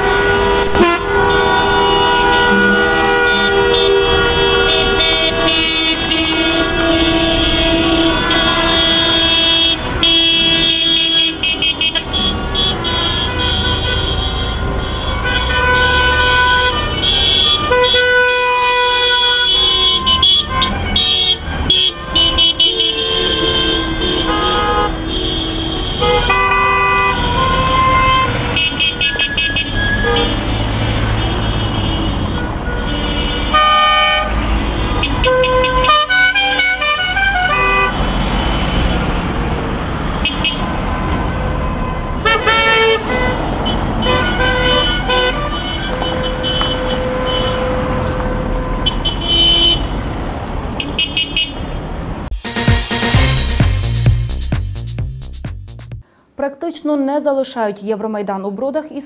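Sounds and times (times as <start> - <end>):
car horns honking: 0.0 - 50.1, 50.7 - 55.4
engine and tyre rumble: 23.6 - 52.3.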